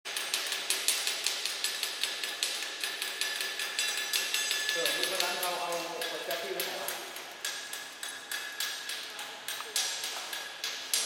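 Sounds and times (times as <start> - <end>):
hand tool tapping hard surface: 0.2 - 11.0.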